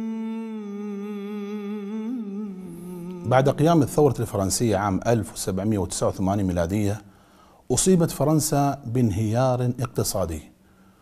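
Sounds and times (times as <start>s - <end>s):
person humming a held note: 0.0s - 3.8s.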